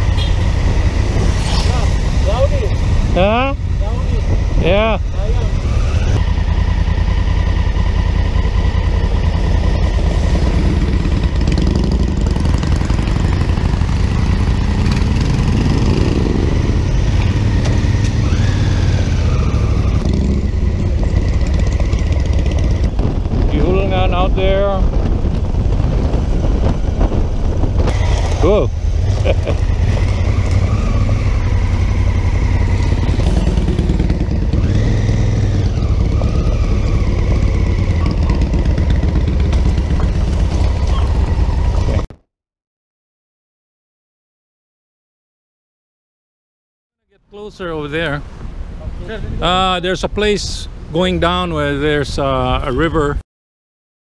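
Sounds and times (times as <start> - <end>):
motorcycle engine running: 0.0 - 42.1
wind rumble on microphone: 18.9 - 42.1.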